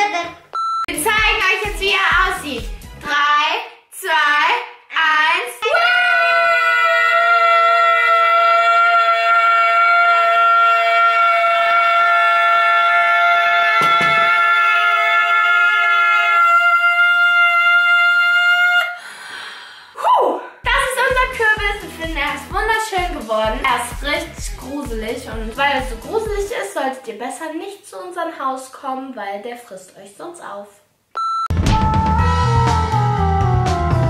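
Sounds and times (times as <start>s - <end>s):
breathy exhale: 19.0s - 20.0s.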